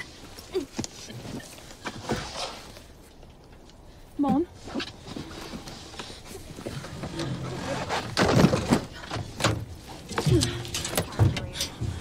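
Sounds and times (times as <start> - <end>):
clothing and upholstery rustling: 0.0 - 3.2, 4.2 - 12.0
knocks and bumps: 6.6 - 12.0.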